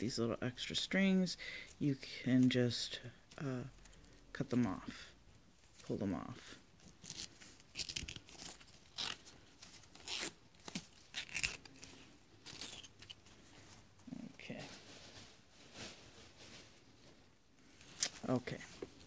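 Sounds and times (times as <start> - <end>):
strands tearing: 6.9 - 13.2.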